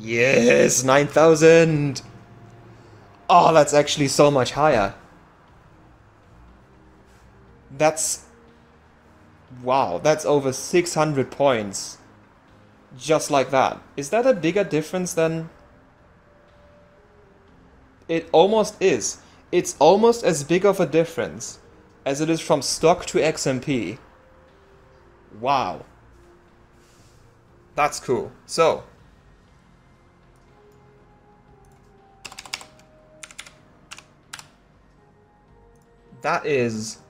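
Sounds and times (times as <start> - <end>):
typing on computer keyboard: 32.2 - 34.5.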